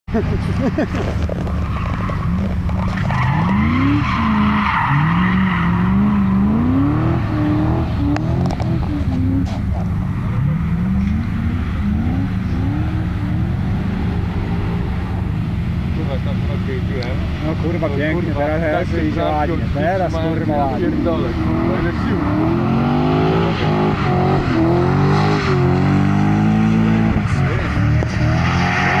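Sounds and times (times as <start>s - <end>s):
car engine revving: 0.2s - 29.0s
tyre squeal: 1.1s - 7.6s.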